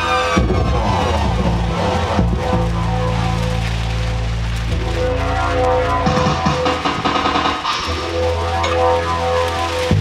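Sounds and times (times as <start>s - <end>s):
deep bass line: 0.0s - 10.0s
hissing effects noise: 0.0s - 10.0s.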